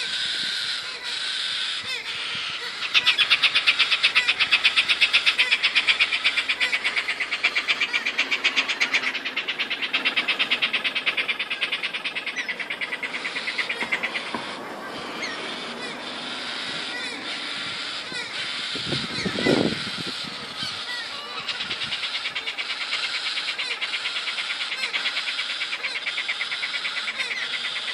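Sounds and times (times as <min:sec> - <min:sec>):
cockatoo harsh pulsing call: 0:00.0 - 0:27.9.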